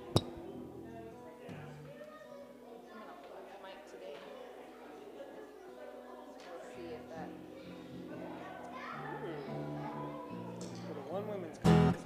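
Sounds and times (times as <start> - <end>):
murmur of congregation: 0.0 - 12.0
children's voices: 1.8 - 3.5, 4.1 - 10.8.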